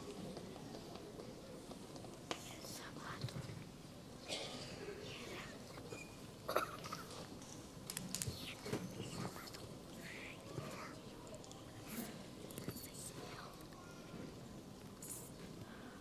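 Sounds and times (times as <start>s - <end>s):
children whispering: 2.3s - 3.5s, 4.3s - 7.3s, 8.2s - 16.0s
small clicks and rustles: 5.7s - 13.9s.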